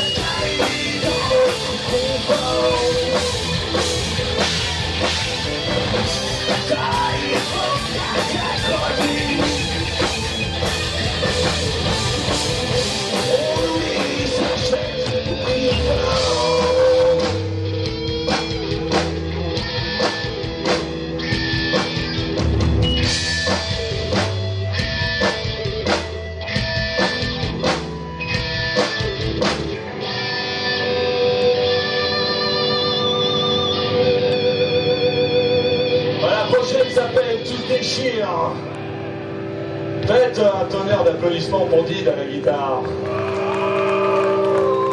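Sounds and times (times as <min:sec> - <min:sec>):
bass guitar: 0:00.0 - 0:44.9
distorted electric guitars: 0:00.0 - 0:44.9
drums: 0:00.0 - 0:44.9.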